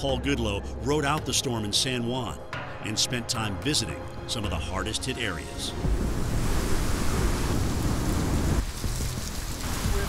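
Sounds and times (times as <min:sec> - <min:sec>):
wind buffeting microphone: 0:05.8 - 0:09.4
heavy rain: 0:05.8 - 0:10.0
wind: 0:05.8 - 0:10.0.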